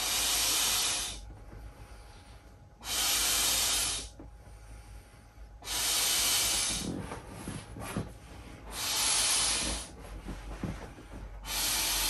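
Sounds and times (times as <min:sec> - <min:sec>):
air pump rushing air: 0:00.0 - 0:12.0.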